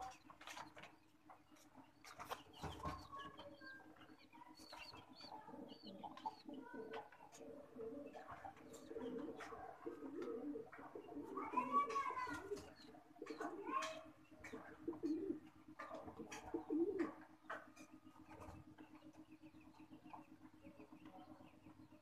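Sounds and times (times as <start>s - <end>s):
pigeons cooing: 4.4s - 18.8s.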